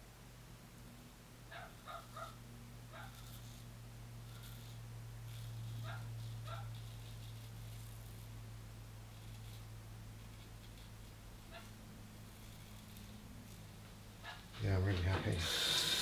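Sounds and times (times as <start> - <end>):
low steady hum: 0.0 - 16.0
razor scraping stubble: 2.9 - 8.4, 9.0 - 15.4.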